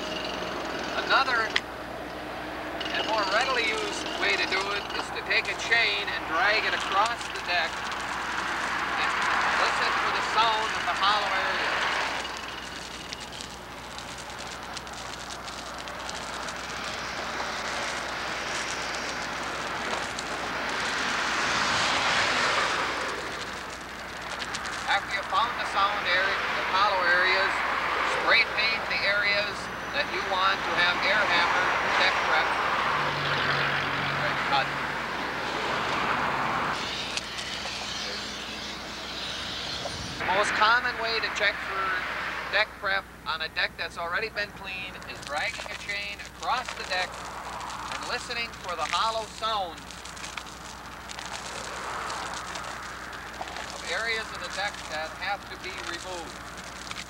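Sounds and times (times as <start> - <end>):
chain dragging on concrete: 0.0 - 1.6, 2.6 - 29.6, 35.5 - 41.5, 44.2 - 57.0
highway traffic passing: 0.0 - 57.0.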